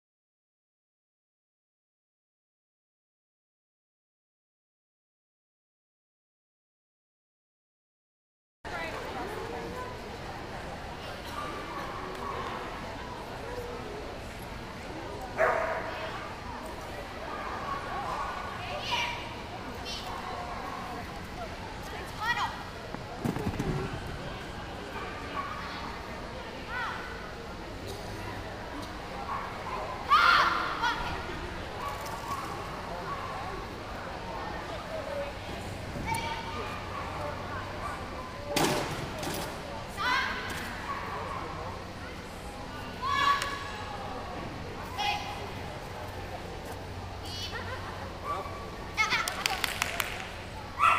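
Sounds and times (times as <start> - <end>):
murmur of voices: 8.7 - 50.9
dog barking: 15.4 - 15.9.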